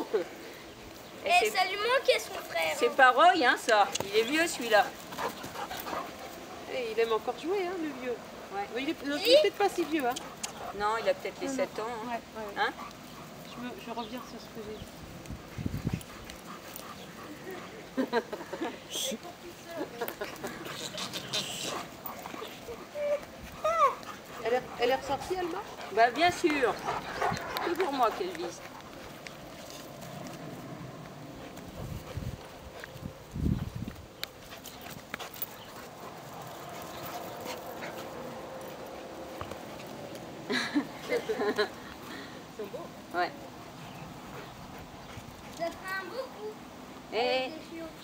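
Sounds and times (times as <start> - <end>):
dogs scuffling on grass: 0.2 - 48.0
soft dog sounds: 20.4 - 40.0.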